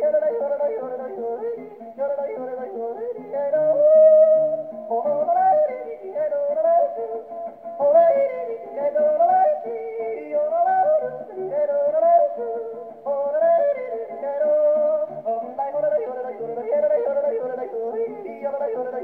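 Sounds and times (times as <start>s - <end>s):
man yodeling: 0.0s - 19.0s
plucked guitar: 0.0s - 19.0s.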